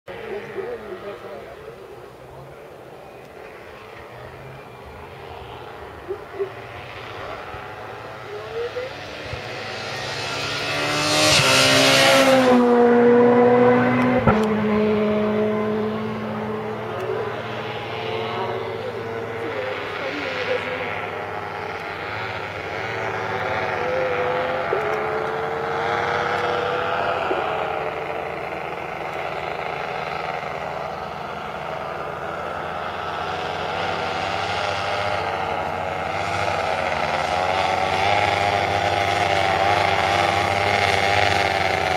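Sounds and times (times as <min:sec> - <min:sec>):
paramotor engine drone overhead: 0:00.1 - 0:41.9
rally car passing at speed: 0:00.1 - 0:41.9.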